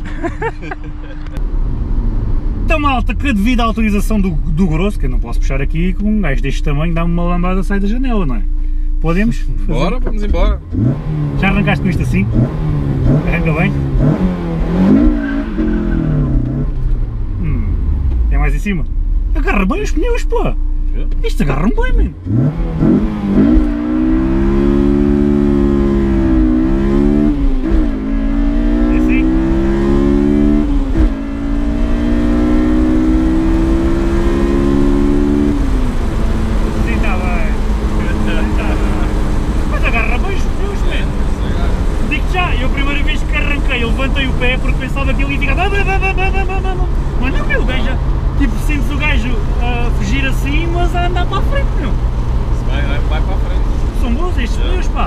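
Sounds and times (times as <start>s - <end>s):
car engine accelerating: 0.0s - 55.0s
road noise: 0.0s - 55.0s.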